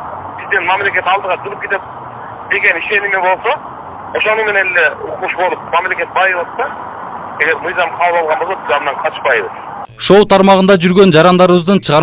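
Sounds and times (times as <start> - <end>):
man speaking over telephone: 0.4 - 1.8, 2.5 - 6.8, 7.4 - 12.0.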